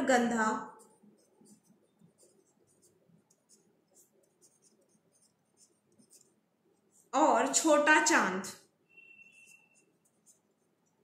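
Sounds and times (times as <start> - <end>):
marker scratching on paper: 0.0 - 11.0.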